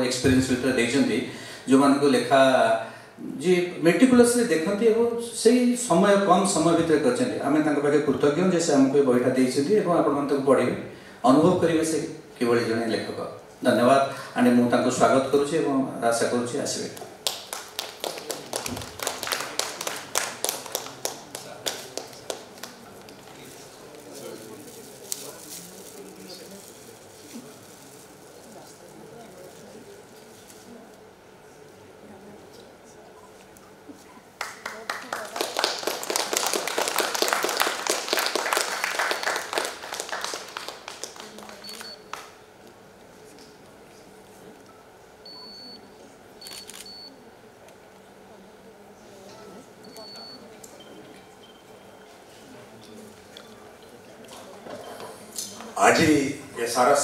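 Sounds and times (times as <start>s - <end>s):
scattered applause: 17.2s - 23.5s, 34.3s - 42.4s
camera autofocus beep: 41.6s - 42.1s, 44.7s - 47.3s, 49.8s - 52.1s.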